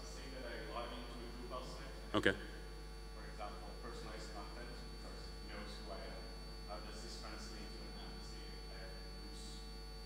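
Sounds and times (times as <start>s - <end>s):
electrical mains hum: 0.0s - 10.0s
high whine: 0.0s - 10.0s.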